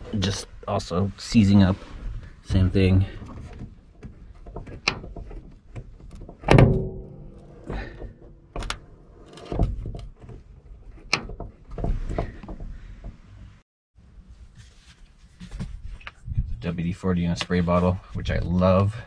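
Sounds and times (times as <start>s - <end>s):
metal door hinge clicks and knocks: 3.4s - 12.7s.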